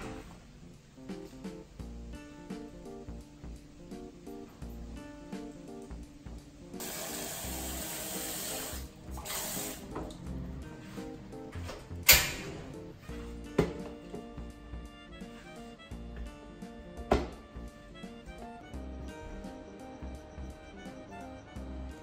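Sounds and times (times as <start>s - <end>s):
background music: 0.0s - 22.0s
water running from tap: 6.8s - 10.2s.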